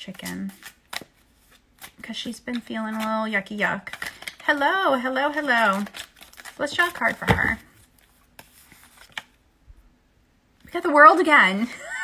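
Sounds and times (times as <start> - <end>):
cards rubbing and snapping: 0.1 - 4.5, 5.4 - 7.2, 7.8 - 9.4.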